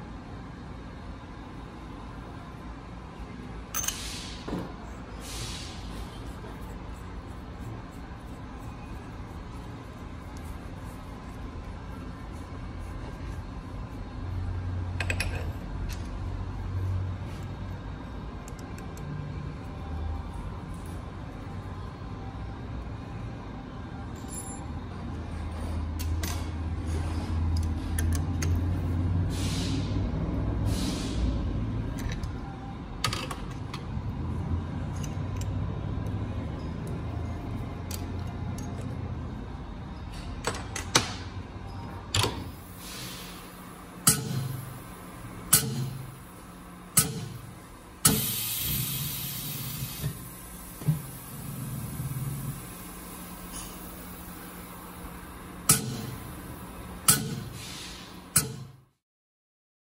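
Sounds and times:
short hisses: 0:05.2 - 0:05.9, 0:29.3 - 0:30.0, 0:30.7 - 0:31.3, 0:57.5 - 0:58.1
fuel spray hissing: 0:47.4 - 0:54.8.

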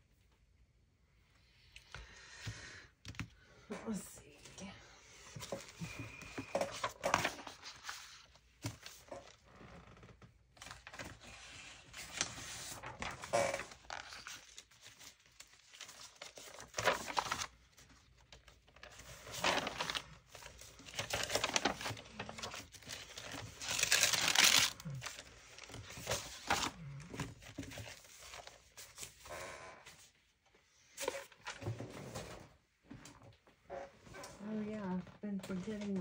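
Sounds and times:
paper sheets rustling and sliding: 0:05.3 - 0:09.4, 0:10.6 - 0:29.3.

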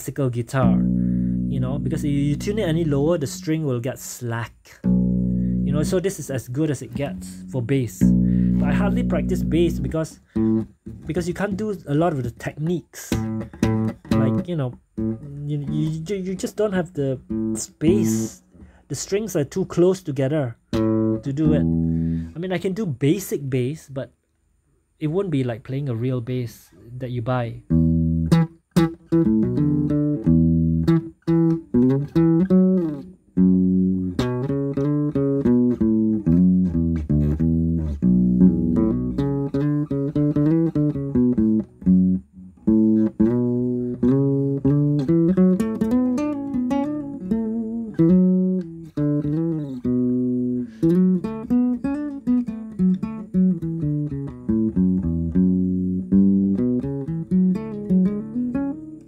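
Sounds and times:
fingerstyle nylon-string guitar: 0:00.0 - 0:23.3, 0:27.6 - 0:59.0.

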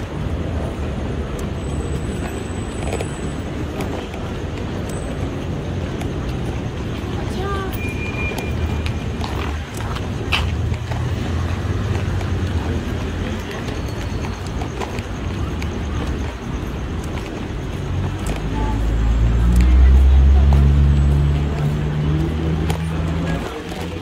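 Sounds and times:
constant background noise: 0:00.0 - 0:24.0
many people talking: 0:00.0 - 0:24.0
footsteps: 0:01.5 - 0:24.0.

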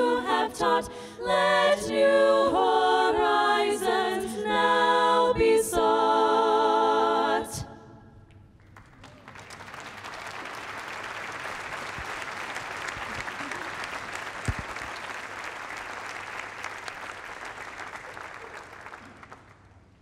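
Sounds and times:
audience applauding: 0:08.6 - 0:19.8.

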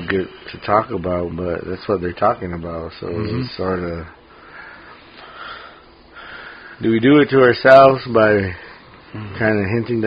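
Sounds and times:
man speaking: 0:00.0 - 0:04.2, 0:06.8 - 0:10.0
person breathing in through nose: 0:04.3 - 0:06.8.

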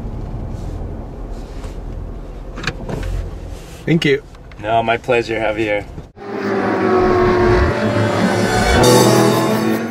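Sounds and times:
car engine sound effect: 0:06.2 - 0:09.9
steady musical tones: 0:06.2 - 0:09.9.

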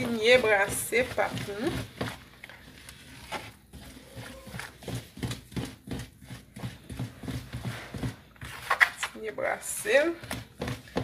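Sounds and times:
dough stirred in a bowl: 0:00.0 - 0:11.0.

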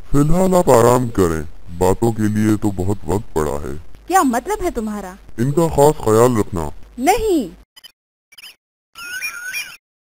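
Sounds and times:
high-pitched squeaky chirps: 0:07.8 - 0:09.8.

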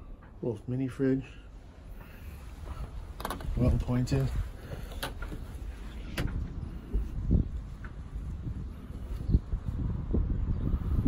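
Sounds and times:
wind buffeting microphone: 0:02.0 - 0:11.0.

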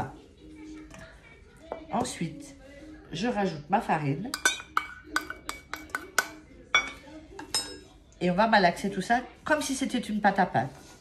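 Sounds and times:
utensil clinking on metal bowl: 0:04.2 - 0:07.9.

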